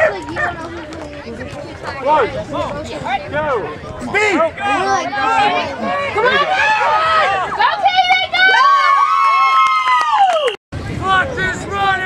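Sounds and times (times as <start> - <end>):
spectator long high shout: 4.6 - 10.5.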